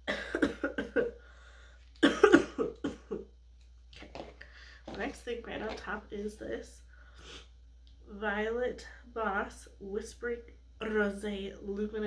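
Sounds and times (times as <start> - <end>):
woman coughing: 0.0 - 1.2, 2.0 - 3.3.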